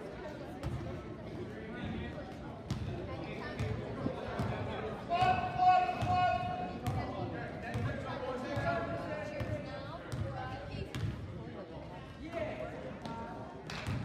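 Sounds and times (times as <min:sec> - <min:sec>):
voices in background: 0:00.0 - 0:14.0.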